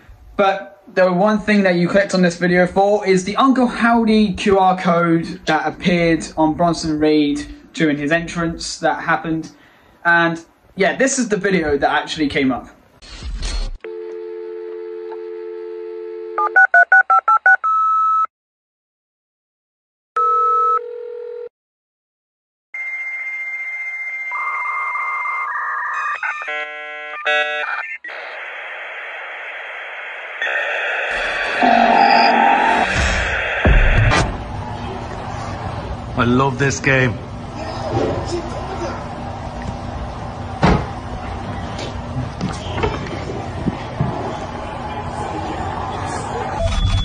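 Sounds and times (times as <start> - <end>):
short telephone tones: 13.8 - 18.3
dial-up modem handshake tones: 13.9 - 18.3
steady background noise: 28.1 - 47.0
loud thump: 32.8 - 34.6, 40.6 - 41.0.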